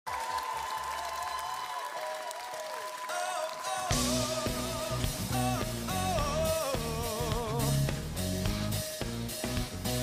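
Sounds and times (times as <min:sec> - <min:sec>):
rock band playing: 0:03.7 - 0:10.0.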